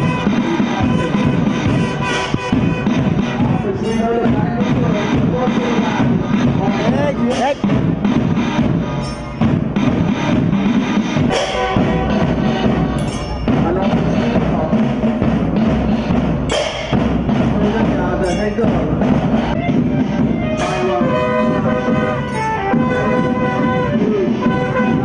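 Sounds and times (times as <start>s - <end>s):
bass drums: 0.0s - 25.0s
cymbal crashes: 0.0s - 25.0s
snare drums: 0.0s - 25.0s.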